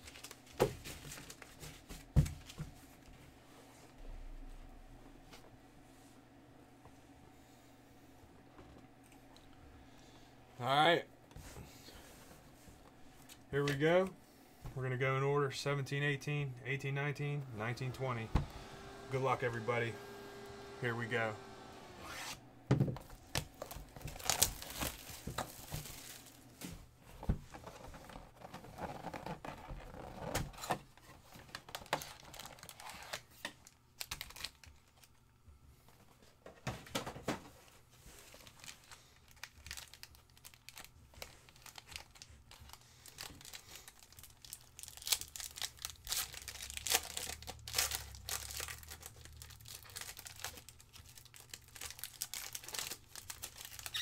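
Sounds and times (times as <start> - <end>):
wrapper and cardboard crinkling: 0.0 - 2.6, 23.0 - 26.6, 31.0 - 35.2, 38.0 - 54.0
foil pack tearing open: 23.2 - 26.4, 34.0 - 34.8, 38.4 - 54.0.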